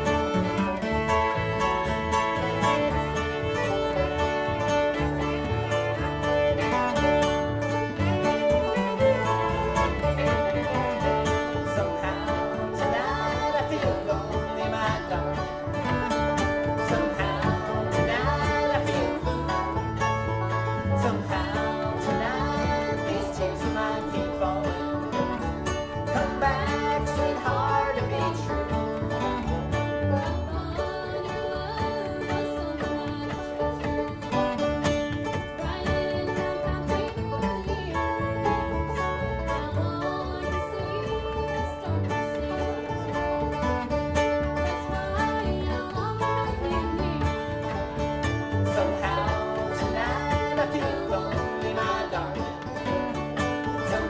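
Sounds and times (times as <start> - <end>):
acoustic guitar: 0.0 - 54.0
banjo: 0.0 - 54.0
fiddle: 0.0 - 54.0
upright bass: 0.0 - 54.0.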